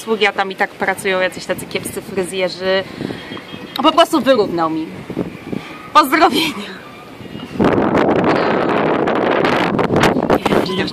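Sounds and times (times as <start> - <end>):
wind buffeting microphone: 0.6 - 10.9.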